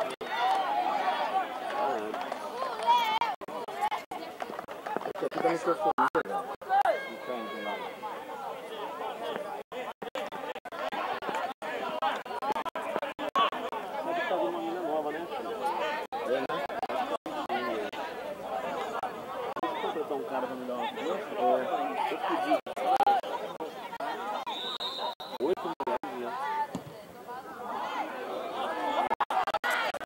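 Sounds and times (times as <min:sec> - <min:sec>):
indistinct chatter: 0:00.0 - 0:30.0.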